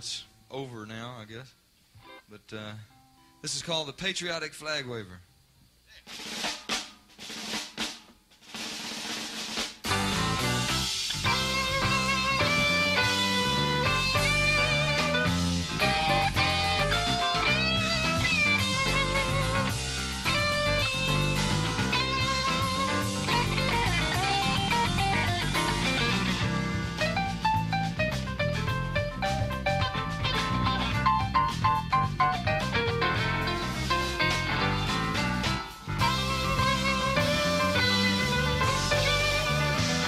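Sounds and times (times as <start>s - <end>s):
snare drum roll: 6.0s - 12.2s
jazz-rock band playing: 8.5s - 40.0s.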